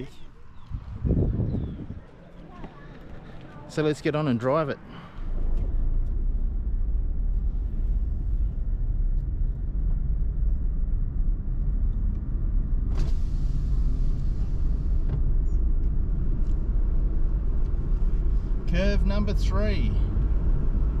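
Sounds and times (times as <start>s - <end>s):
car engine and tyres rumble: 0.0s - 21.0s.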